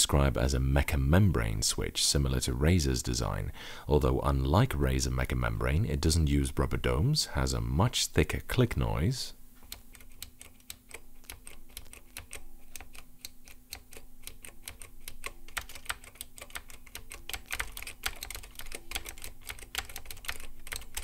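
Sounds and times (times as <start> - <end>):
fast keyboard typing clicks: 9.7 - 21.0.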